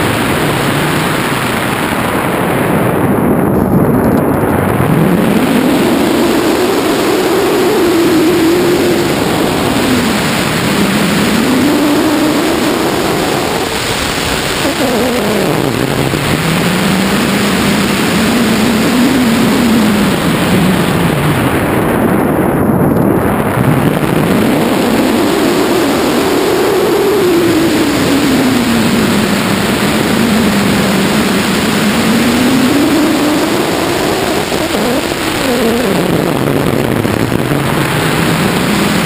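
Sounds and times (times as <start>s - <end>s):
low drone: 0.0s - 39.0s
wind rushing over camera: 0.0s - 39.0s.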